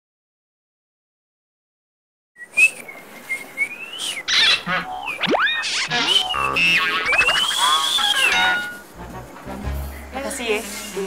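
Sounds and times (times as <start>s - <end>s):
quick whistled chirps: 5.1s - 8.6s
wavering whistle: 5.1s - 8.8s.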